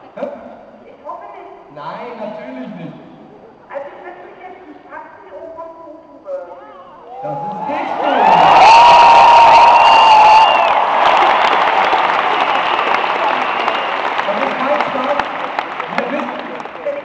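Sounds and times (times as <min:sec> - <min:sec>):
audience cheering: 0:07.2 - 0:17.0
audience clapping: 0:08.0 - 0:17.0.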